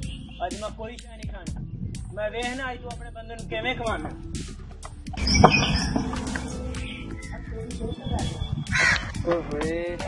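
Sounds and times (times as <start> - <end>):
crow cawing: 8.7 - 9.2.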